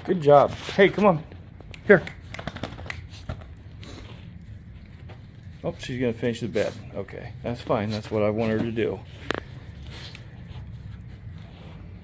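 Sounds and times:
dog sniffing: 1.7 - 5.6, 9.0 - 12.0.

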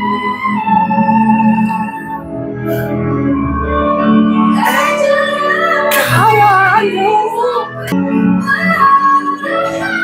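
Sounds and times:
woman singing pop ballad: 4.5 - 10.0.

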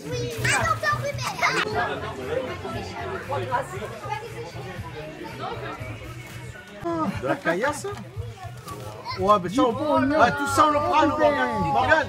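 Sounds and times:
children shrieking and shouting: 0.0 - 2.0, 8.3 - 12.0
voices chattering: 0.0 - 12.0.

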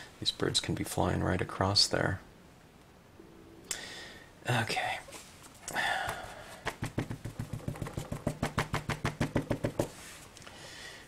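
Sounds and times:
rubber stamp dabbing ink pad: 6.6 - 10.0.

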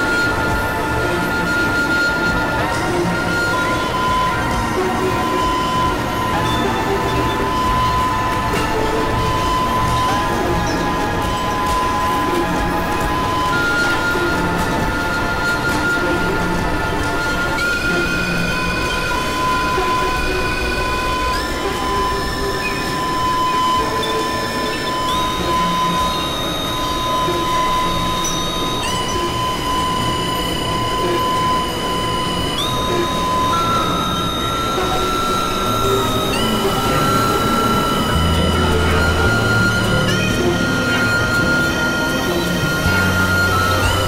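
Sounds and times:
electronic drone music: 0.0 - 44.0.

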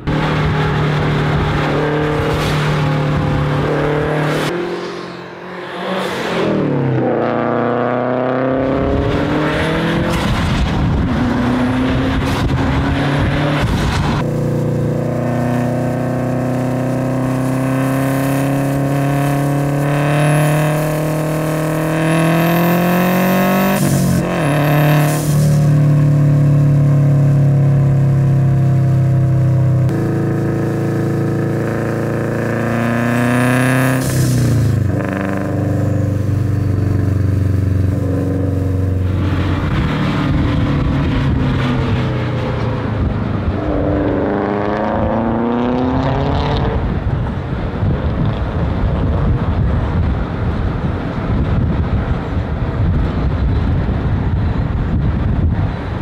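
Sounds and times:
car engine revving through gears: 0.0 - 47.1.

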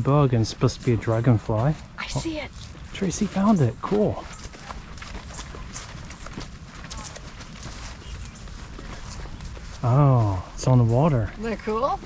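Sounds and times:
footsteps on grass: 0.0 - 12.0.

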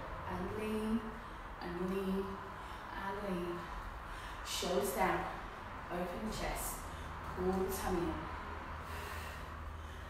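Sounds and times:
low steady hum: 0.0 - 10.0
woman breathing hard: 3.8 - 4.5, 8.7 - 10.0.

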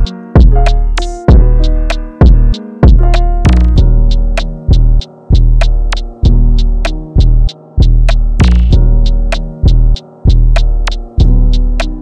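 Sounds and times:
deep bass notes: 0.0 - 12.0.

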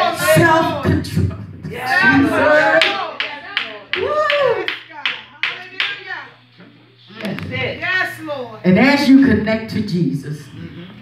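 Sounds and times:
hand claps: 2.7 - 6.1.

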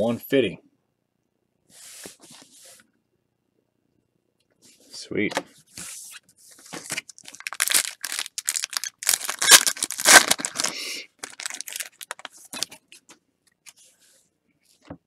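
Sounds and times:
foil wrapper crinkling and tearing: 6.8 - 12.8
foil wrapper rustling: 6.8 - 12.8.

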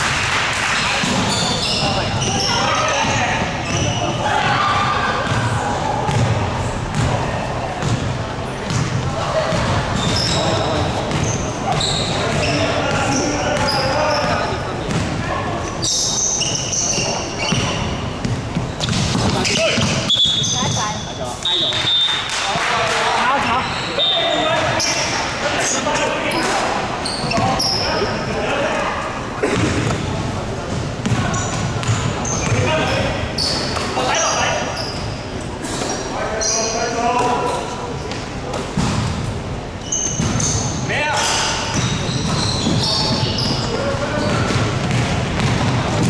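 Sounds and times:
sneakers squeaking: 0.6 - 22.5, 23.4 - 46.0
basketball bouncing on wooden court: 6.1 - 7.2, 7.8 - 8.1, 8.7 - 10.4, 11.1 - 15.2, 16.9 - 20.8, 30.7 - 32.7, 40.1 - 40.5, 41.7 - 46.0.

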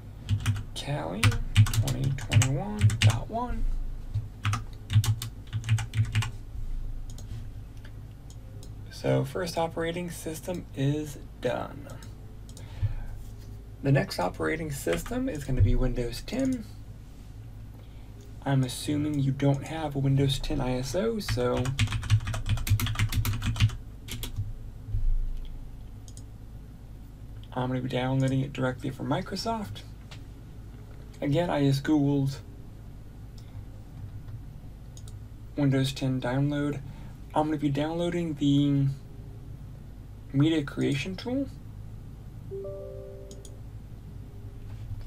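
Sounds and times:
computer keyboard typing: 0.3 - 3.4, 4.1 - 6.3, 21.3 - 24.4.

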